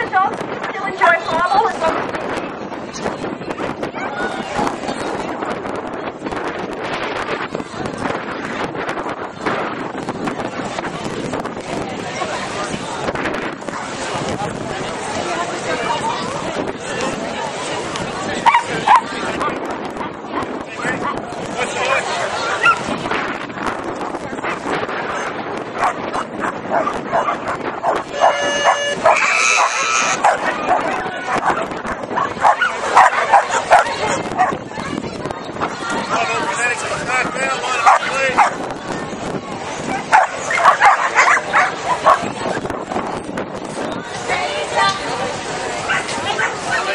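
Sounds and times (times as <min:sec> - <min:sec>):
crowd chatter: 0:00.0 - 0:46.9
dog barking: 0:25.2 - 0:34.6, 0:37.8 - 0:38.6, 0:39.9 - 0:42.3.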